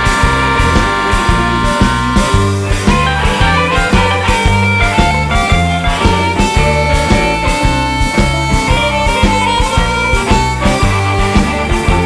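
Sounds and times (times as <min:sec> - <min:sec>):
harmonica holding long notes: 0:00.0 - 0:12.0
pulsing bass line: 0:00.0 - 0:12.0.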